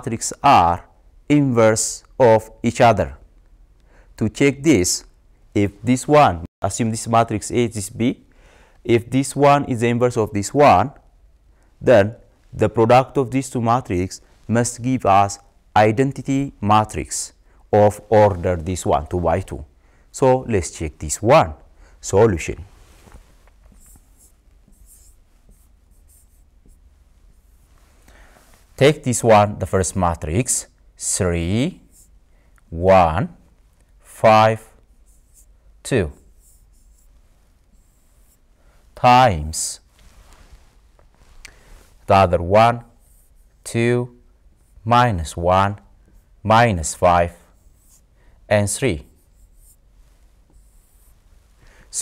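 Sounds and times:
pen scratching on screen: 0:23.7 - 0:27.7, 0:34.9 - 0:35.6, 0:36.2 - 0:38.5, 0:42.9 - 0:43.5, 0:47.4 - 0:48.1, 0:49.0 - 0:49.8, 0:50.5 - 0:51.2.

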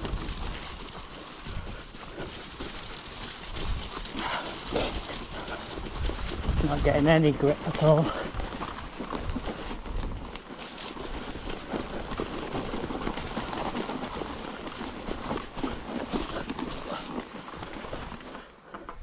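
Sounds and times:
bike rattling and knocking: 0:00.0 - 0:19.0
bike tyres in mud and grass: 0:00.0 - 0:19.0.

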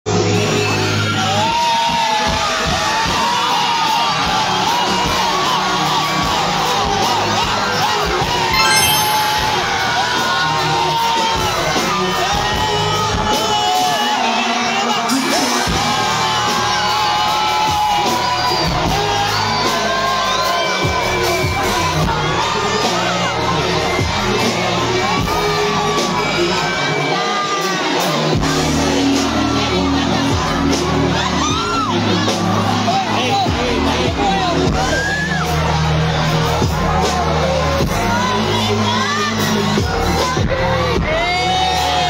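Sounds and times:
crowd yelling and singing along: 0:12.0 - 0:42.0.

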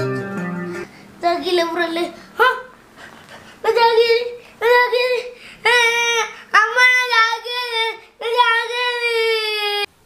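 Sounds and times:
young boy wailing: 0:03.7 - 0:09.9.

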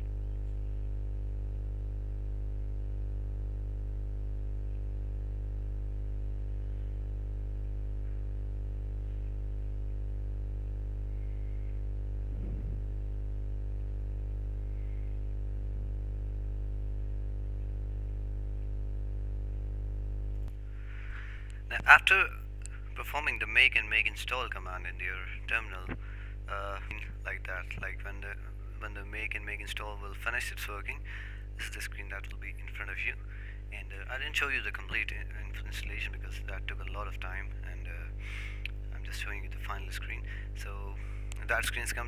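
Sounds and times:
electrical mains hum: 0:00.0 - 0:42.0
faint rustle: 0:11.1 - 0:12.9.

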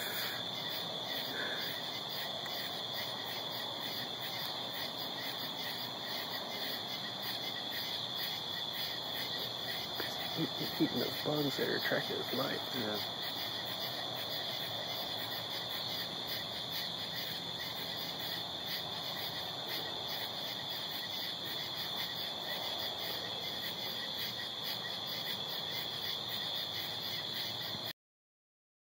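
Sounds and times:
night insects chirping: 0:00.0 - 0:27.9.

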